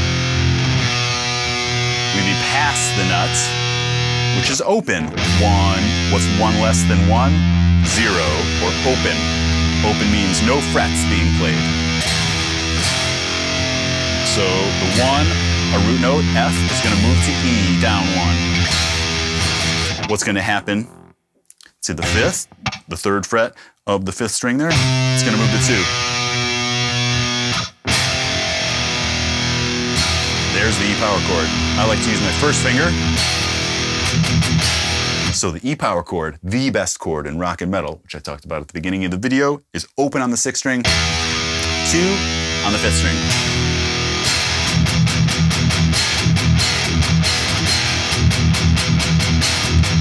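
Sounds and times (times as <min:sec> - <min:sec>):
distorted electric guitar power chord: 0:00.0 - 0:04.5, 0:05.2 - 0:20.1, 0:20.8 - 0:21.2, 0:24.8 - 0:35.3, 0:40.9 - 0:50.0.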